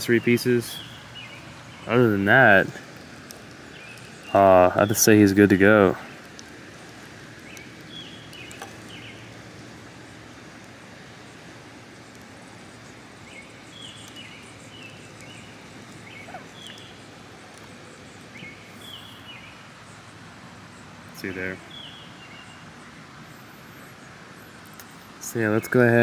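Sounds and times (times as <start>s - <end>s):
bird chirping: 0.0s - 2.8s, 3.6s - 6.1s, 7.4s - 9.4s, 12.8s - 24.1s
outdoor background noise: 0.0s - 26.0s
faint plastic clicks: 6.1s - 9.7s, 13.4s - 17.8s, 24.6s - 25.0s.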